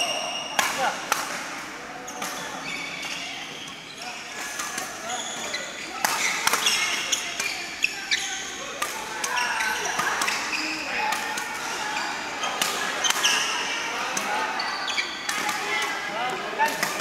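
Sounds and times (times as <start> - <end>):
voices echoing in hall: 0.0 - 17.0
shoes squeaking on floor: 2.1 - 8.6, 9.3 - 11.0, 11.8 - 13.6, 14.5 - 15.2
rackets hitting shuttlecocks: 6.0 - 7.6.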